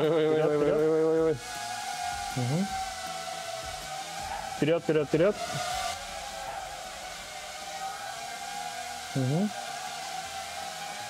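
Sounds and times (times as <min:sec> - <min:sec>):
drone humming in flight: 0:00.0 - 0:11.0.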